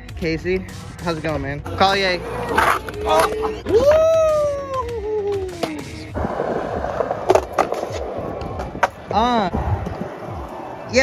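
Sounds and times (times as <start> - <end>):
skateboard wheels rolling on concrete: 0.9 - 11.0
skateboard clacks: 5.2 - 10.9.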